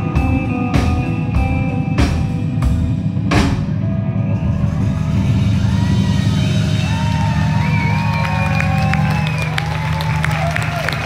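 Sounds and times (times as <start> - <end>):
live rock band: 0.0 - 11.0
audience cheering: 4.1 - 11.0.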